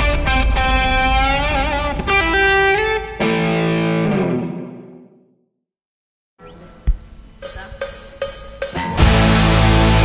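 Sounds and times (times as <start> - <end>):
percussion count-in strikes: 7.4 - 10.0
rock band playing: 7.4 - 10.0.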